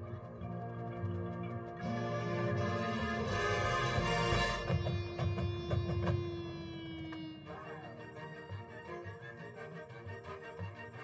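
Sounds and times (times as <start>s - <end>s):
woodwind playing: 0.0s - 11.0s
marching band holding a note: 1.8s - 6.1s.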